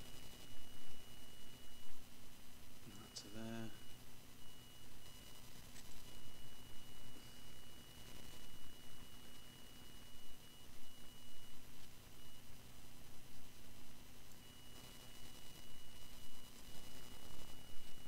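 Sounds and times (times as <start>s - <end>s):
steady low hum: 0.0s - 18.0s
thin high whine: 0.0s - 18.0s.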